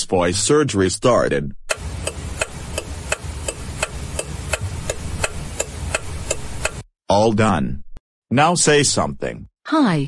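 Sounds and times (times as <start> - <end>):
background hiss and rumble: 1.7 - 6.8
clock ticking: 1.7 - 6.8.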